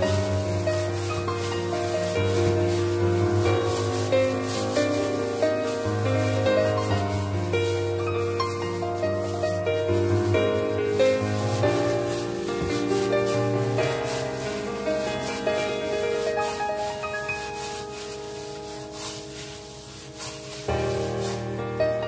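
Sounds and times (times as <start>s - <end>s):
gloved hand mixing minced meat: 0.0s - 22.0s
instrumental music with held notes: 0.0s - 22.0s.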